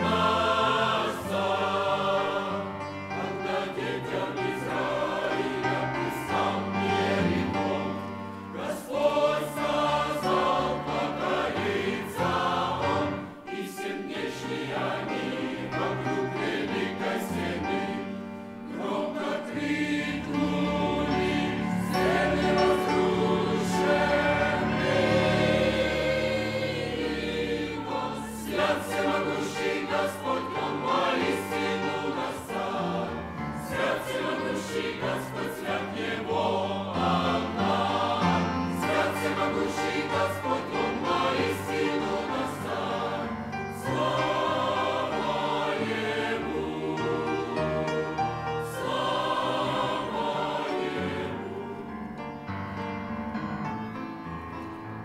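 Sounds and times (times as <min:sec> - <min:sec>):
mixed choir singing a hymn: 0:00.0 - 0:54.0.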